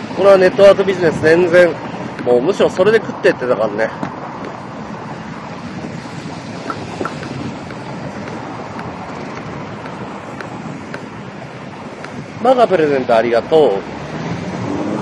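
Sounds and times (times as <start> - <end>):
road traffic: 0.0 - 15.0
wind rushing over microphone: 0.0 - 15.0.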